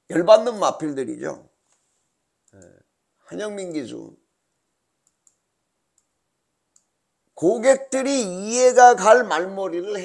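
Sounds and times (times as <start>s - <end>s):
computer mouse clicks: 2.4s - 2.8s, 4.5s - 7.0s.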